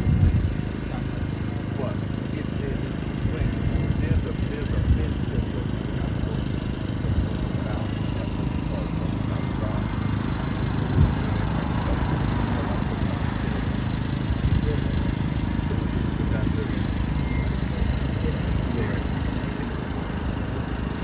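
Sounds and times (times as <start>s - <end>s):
street traffic rumble: 0.0s - 21.0s
man talking: 0.7s - 10.1s, 10.9s - 13.9s, 14.5s - 16.9s, 18.2s - 20.0s.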